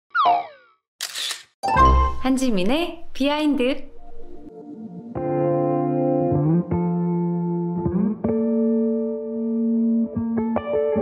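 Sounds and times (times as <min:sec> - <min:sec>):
cartoon falling boing: 0:00.1 - 0:00.8.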